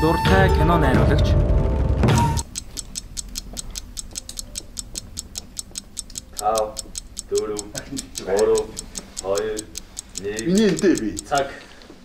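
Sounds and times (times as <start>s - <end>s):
clock ticking: 2.2s - 12.0s
voices murmuring: 6.2s - 11.7s.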